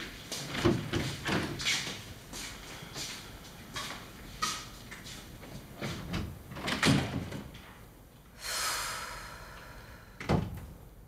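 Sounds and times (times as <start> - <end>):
door being handled: 6.1 - 7.5.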